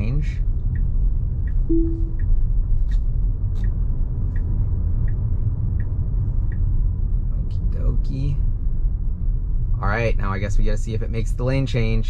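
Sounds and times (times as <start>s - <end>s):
turn signal ticking: 0.0s - 7.3s
road and tyre rumble: 0.0s - 12.0s
short single tone: 1.7s - 2.2s.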